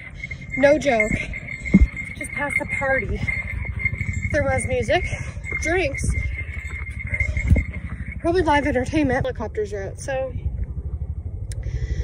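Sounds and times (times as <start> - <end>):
helicopter rotor rumble: 0.0 - 12.0
steady high whine: 0.0 - 12.0.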